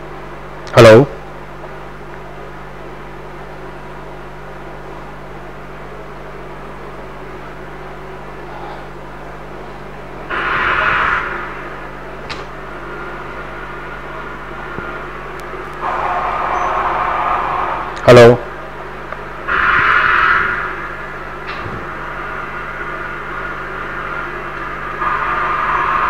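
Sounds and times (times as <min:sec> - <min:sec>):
low electrical hum: 0:00.0 - 0:26.0
bursts of hiss: 0:10.3 - 0:11.8.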